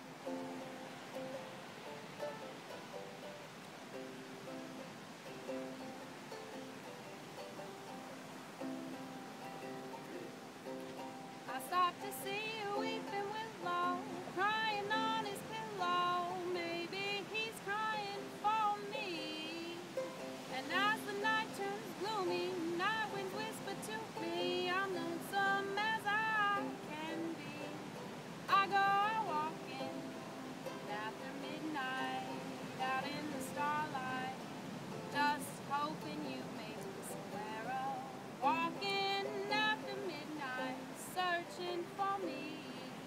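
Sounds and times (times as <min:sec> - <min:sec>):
ukulele: 0:00.0 - 0:43.0
woman singing: 0:11.4 - 0:43.0.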